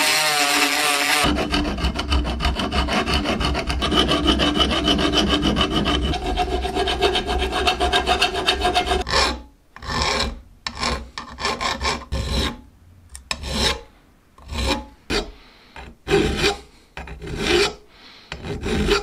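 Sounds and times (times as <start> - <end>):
hand file rasping on steel: 0.0 - 12.6, 13.3 - 19.0.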